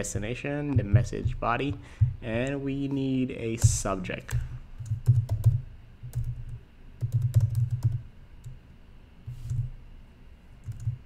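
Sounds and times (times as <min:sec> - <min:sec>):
typing on computer keyboard: 0:04.3 - 0:08.0, 0:10.6 - 0:11.0.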